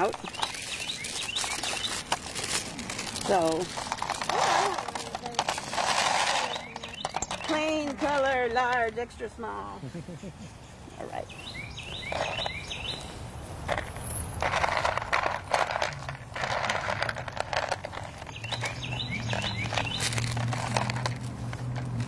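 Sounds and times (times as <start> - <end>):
plastic bags rustling: 0.0 - 8.9, 13.6 - 22.0
songbirds chirping: 0.0 - 22.0.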